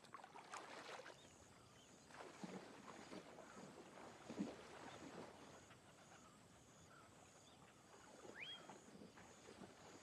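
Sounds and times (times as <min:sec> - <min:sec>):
water sloshing from wading: 0:00.0 - 0:10.0.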